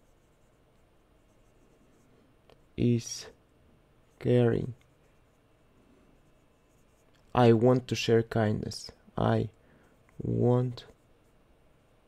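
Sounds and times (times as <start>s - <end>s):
marker writing on whiteboard: 6.2s - 7.3s.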